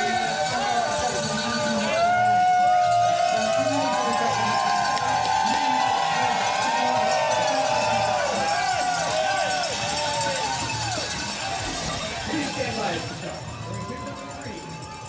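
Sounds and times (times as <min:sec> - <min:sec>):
crowd cheering and whooping: 0:01.8 - 0:15.0.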